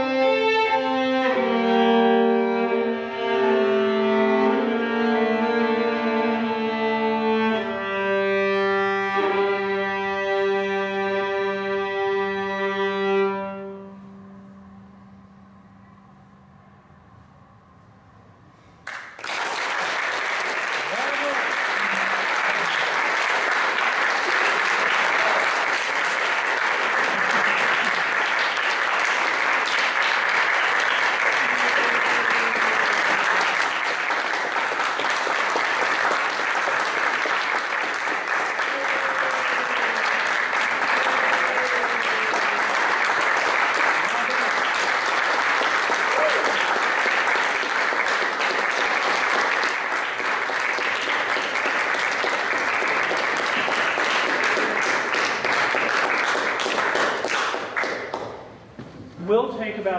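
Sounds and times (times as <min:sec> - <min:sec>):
audience applauding: 0:18.8 - 0:58.6
voices among clapping: 0:18.9 - 0:58.2.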